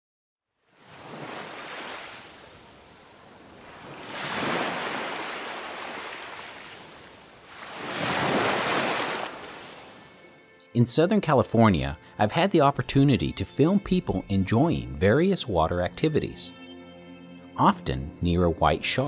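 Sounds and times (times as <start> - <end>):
ocean waves breaking: 0.7 - 10.4.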